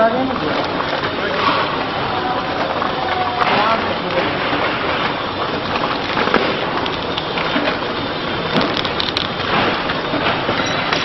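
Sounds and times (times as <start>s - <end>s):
packing machine clattering: 0.0s - 11.0s.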